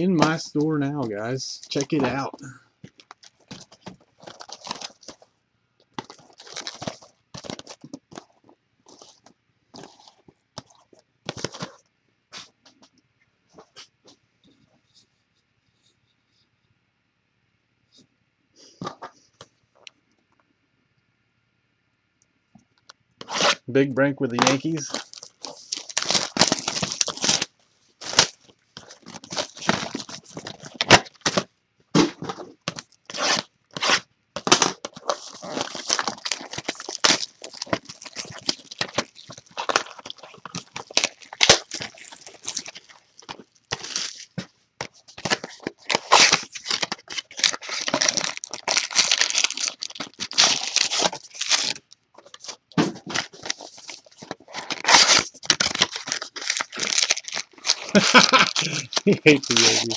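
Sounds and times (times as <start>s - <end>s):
plastic shrink wrap crinkling: 0.0s - 5.3s, 5.9s - 11.8s, 24.2s - 59.9s.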